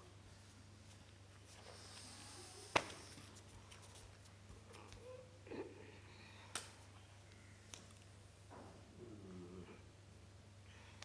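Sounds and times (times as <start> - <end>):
man humming faintly: 4.6 - 7.6, 8.8 - 10.0.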